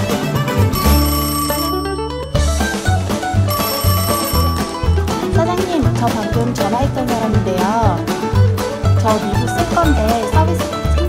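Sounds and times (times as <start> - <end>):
telephone ringing: 0.7 - 6.0
music with a pulsing beat: 2.4 - 11.0.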